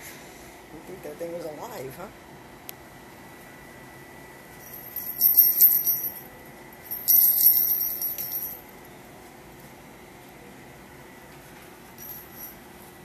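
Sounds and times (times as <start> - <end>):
small jingle bell jingling: 4.6 - 6.2, 6.9 - 8.6, 12.0 - 12.6.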